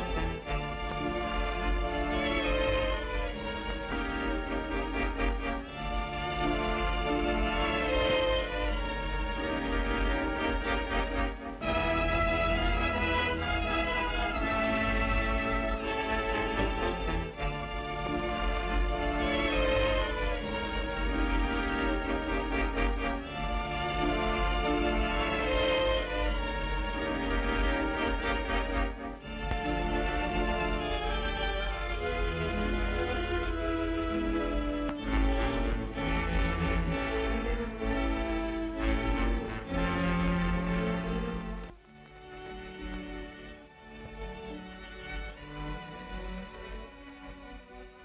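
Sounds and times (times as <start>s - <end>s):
orchestral strings: 0.0s - 48.0s
violins playing held notes: 0.0s - 48.0s.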